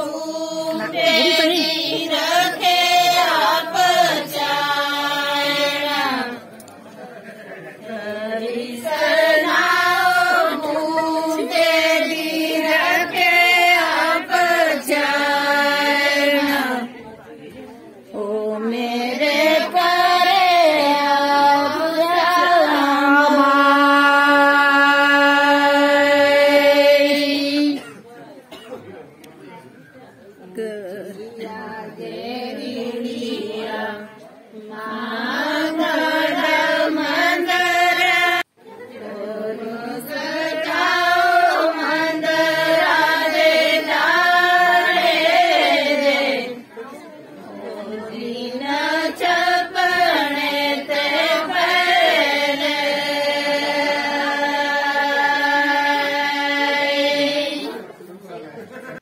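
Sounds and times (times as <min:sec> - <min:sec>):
women singing a devotional song: 0:00.0 - 0:28.7, 0:30.4 - 0:59.0.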